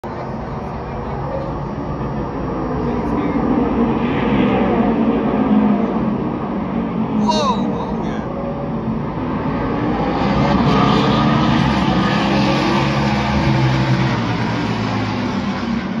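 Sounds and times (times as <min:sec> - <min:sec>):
stock car engines running loudly: 0:00.0 - 0:16.0.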